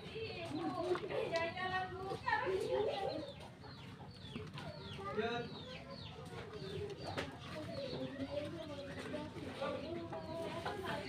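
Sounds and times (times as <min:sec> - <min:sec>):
birds chirping: 0:00.0 - 0:11.0
faint voices: 0:00.0 - 0:11.0.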